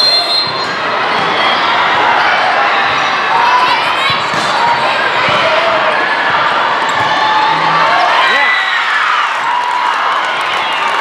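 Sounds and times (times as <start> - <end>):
crowd hum: 0.0 - 11.0
balls hit and bouncing: 4.1 - 7.6.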